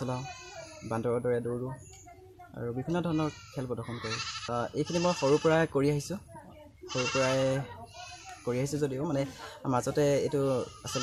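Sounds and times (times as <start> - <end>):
young man talking: 0.0 - 1.8, 2.6 - 6.3, 8.4 - 11.0.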